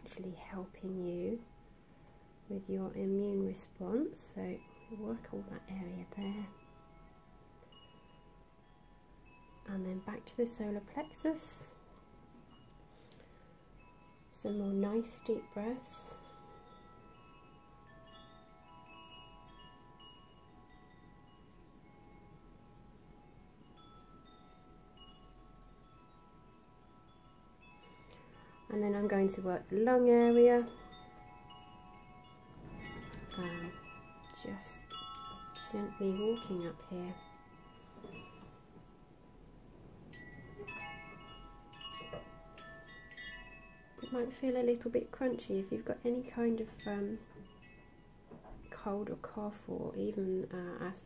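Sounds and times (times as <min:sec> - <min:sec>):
soft chime-like music: 0:00.0 - 0:51.0.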